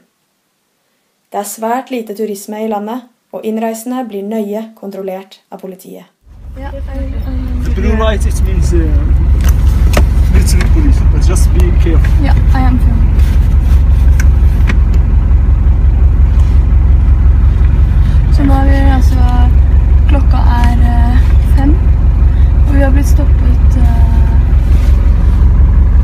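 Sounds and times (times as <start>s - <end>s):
bus engine idling: 6.3s - 26.0s
voices speaking: 6.5s - 13.2s, 18.0s - 24.6s.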